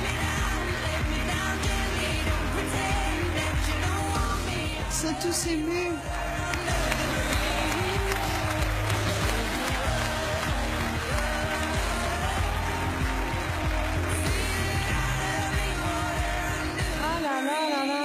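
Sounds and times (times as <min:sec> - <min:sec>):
audience applause and cheering: 0:00.0 - 0:18.0
loud music with steady bass: 0:00.0 - 0:18.0.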